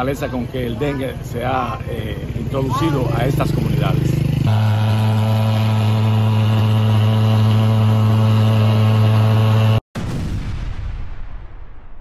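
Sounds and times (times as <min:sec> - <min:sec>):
fogging machine buzzing drone: 0:00.0 - 0:09.8
booming sound effect: 0:04.5 - 0:12.0.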